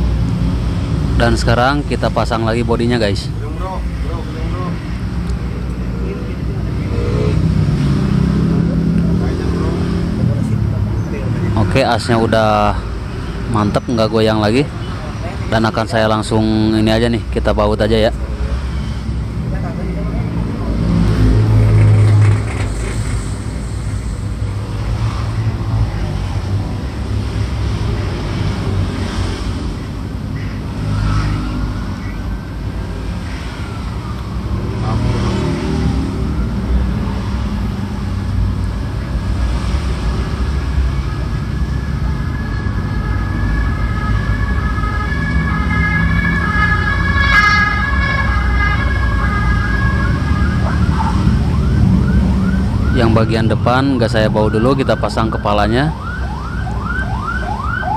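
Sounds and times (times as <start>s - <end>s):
siren: 18.5s - 38.0s, 40.0s - 57.9s.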